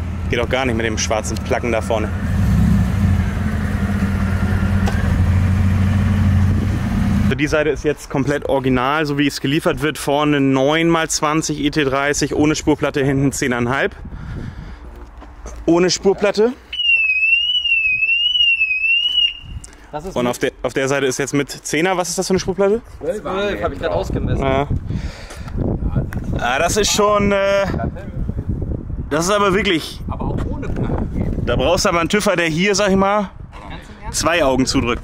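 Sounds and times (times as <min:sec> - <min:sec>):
car engine idling: 0:00.0 - 0:07.3.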